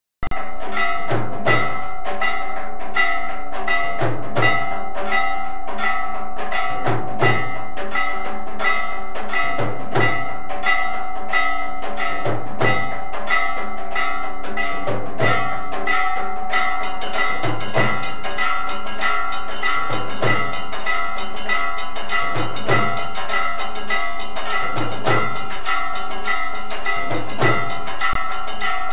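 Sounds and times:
continuous ringing tone: 0.2 - 28.9
deep drum beats: 0.3 - 28.9
temple bells struck rhythmically: 0.3 - 28.9.

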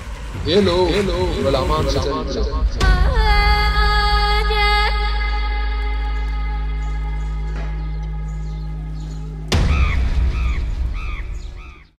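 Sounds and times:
music drone: 4.6 - 11.8
crows cawing: 7.5 - 12.0.

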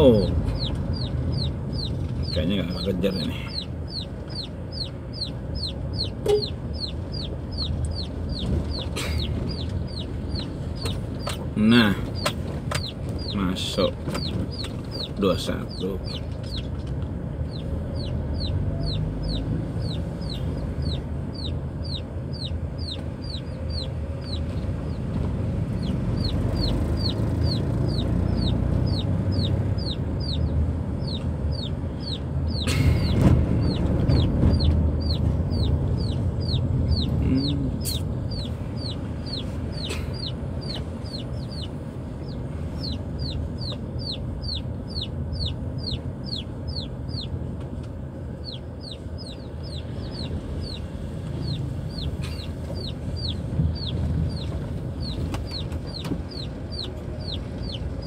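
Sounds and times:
chick peeping: 0.0 - 16.7, 17.5 - 25.1, 25.7 - 47.4, 48.4 - 58.0
car engine and road noise: 0.0 - 58.0.

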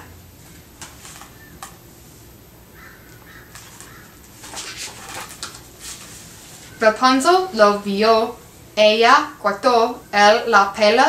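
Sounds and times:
paper pages rustling: 0.5 - 1.8, 3.2 - 6.8.

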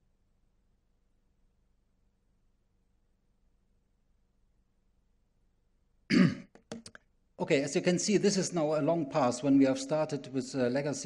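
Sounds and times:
man clearing throat: 6.1 - 6.5.

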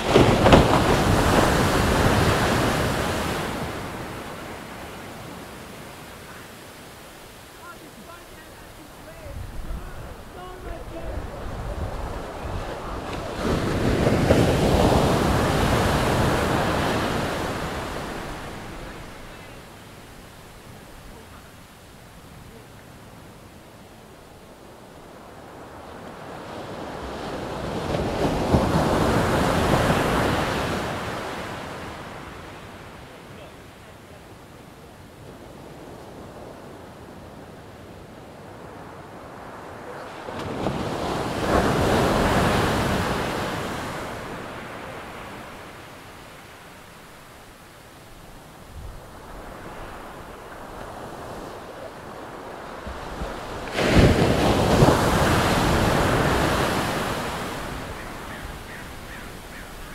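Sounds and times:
ocean waves breaking on shore: 0.0 - 59.9.

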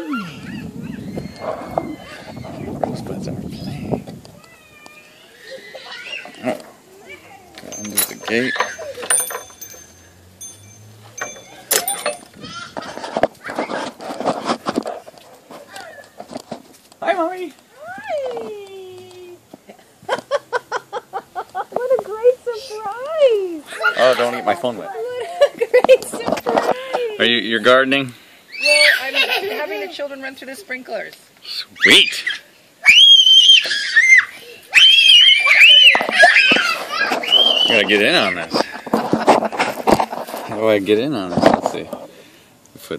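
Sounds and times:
children screaming in play: 0.0 - 2.8, 3.6 - 9.1, 11.3 - 13.9, 15.6 - 16.3, 23.6 - 25.4, 28.4 - 29.6, 31.7 - 38.6
excited high-pitched voices: 0.0 - 2.8, 3.5 - 9.9, 11.1 - 13.9, 21.6 - 27.2, 28.4 - 30.0, 31.4 - 38.8.

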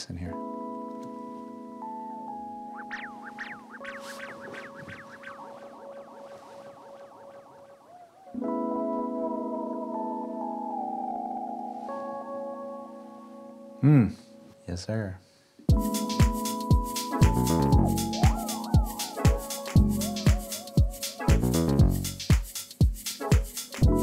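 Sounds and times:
keyboard chords with delay: 0.0 - 14.6, 15.7 - 22.4, 23.4 - 24.0
rising and falling pitch swoops: 2.6 - 12.6.

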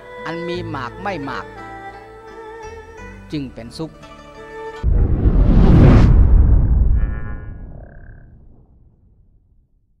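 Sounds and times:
low rumbling boom: 4.8 - 9.7.

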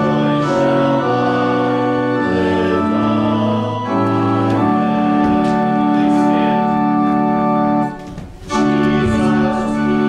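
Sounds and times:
church organ playing a hymn: 0.0 - 10.0.

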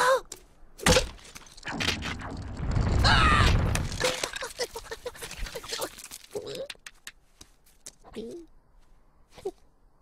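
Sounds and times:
low rumble of cracking ice: 1.5 - 6.4.

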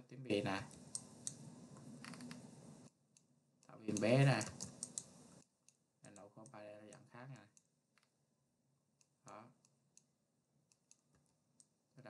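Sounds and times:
computer mouse clicks: 0.7 - 8.2, 10.7 - 11.8.

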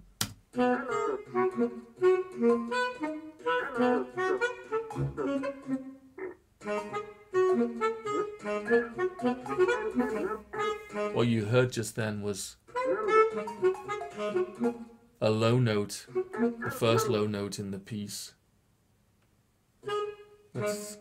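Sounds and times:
synthesized saxophone notes: 0.5 - 11.8, 12.7 - 17.4, 19.8 - 21.0.

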